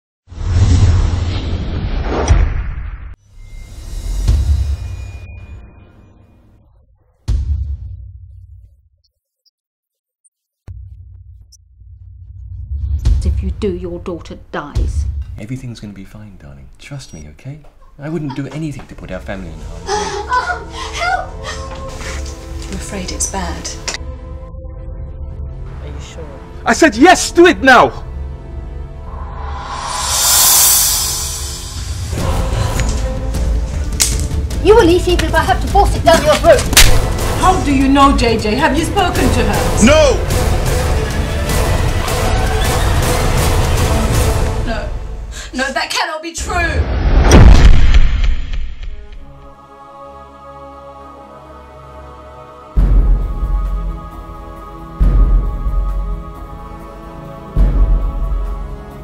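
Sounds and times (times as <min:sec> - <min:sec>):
steady low drone: 0:28.5 - 0:34.0
deep booming whoosh: 0:28.9 - 0:32.7, 0:46.6 - 0:48.8
rising swell: 0:28.9 - 0:33.2.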